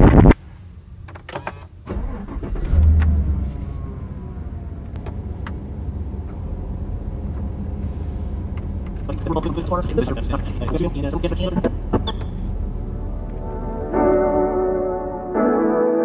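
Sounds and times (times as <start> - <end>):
car engine starting and idling: 0.8 - 15.4.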